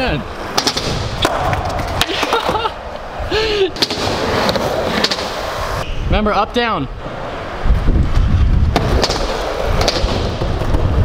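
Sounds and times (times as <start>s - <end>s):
skateboard wheels rolling: 0.0s - 11.0s
skateboard clacking on ramp: 8.7s - 11.0s.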